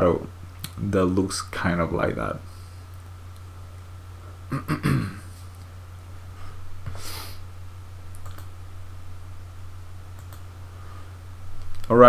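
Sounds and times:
low electrical hum: 0.0 - 12.0
computer keyboard clicks: 8.2 - 8.5, 10.1 - 10.4.

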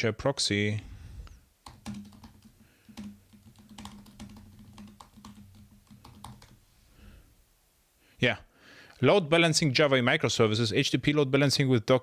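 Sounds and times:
computer keyboard typing: 1.6 - 6.6.

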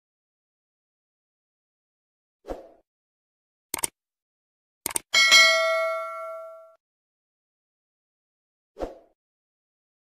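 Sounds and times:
notification bell ding: 5.2 - 6.8.

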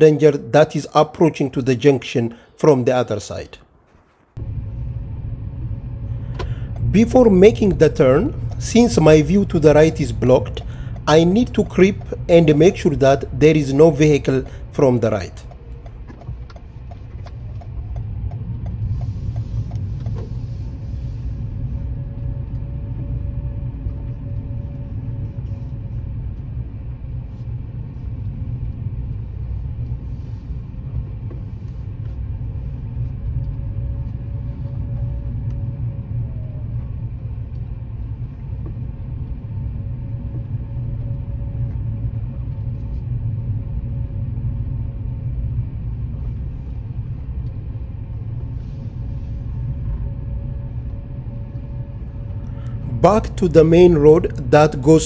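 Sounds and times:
faint steady whine: 0.0 - 55.0
car engine and tyre rumble: 3.9 - 55.0.

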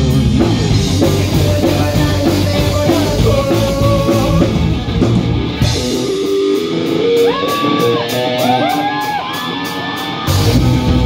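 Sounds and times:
live rock band: 0.0 - 11.0
electric guitar lick with bends: 1.7 - 11.0.

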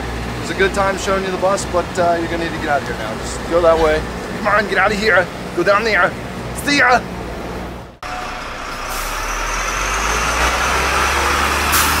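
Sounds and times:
bus engine running: 0.0 - 12.0.

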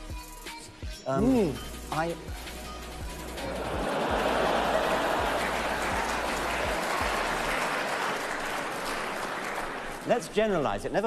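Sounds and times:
audience applauding: 3.3 - 10.9.

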